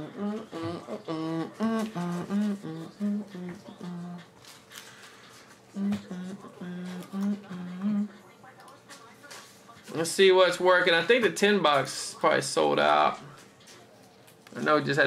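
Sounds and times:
man humming: 0.0 - 4.3, 5.7 - 8.1.

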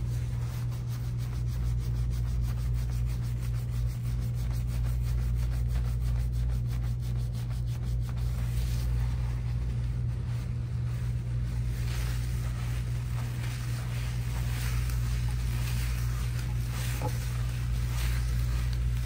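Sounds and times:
hands scrubbing wet hair: 0.0 - 19.0
steady low hum: 0.0 - 19.0.

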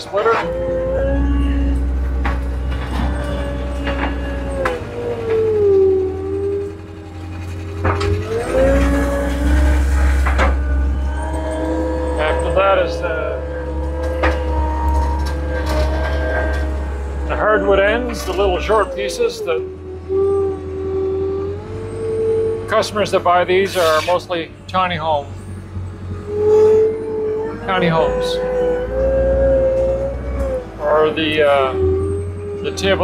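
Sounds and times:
diesel engine revving: 0.0 - 33.0.

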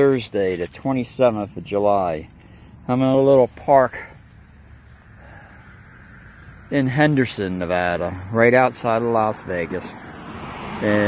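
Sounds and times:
high even hiss: 0.0 - 10.1.

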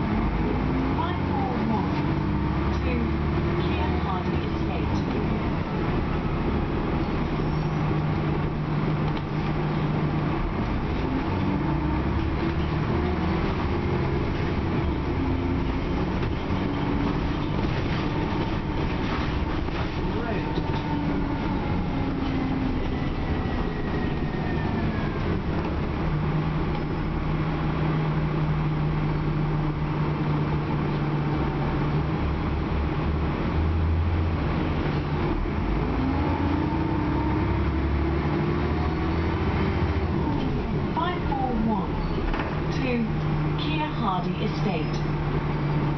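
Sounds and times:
bus diesel engine running: 0.0 - 45.9
road noise: 0.0 - 45.9.

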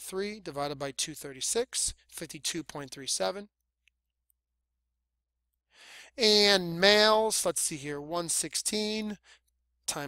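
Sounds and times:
short intake of breath: 5.7 - 6.1
person speaking: 6.1 - 9.2.

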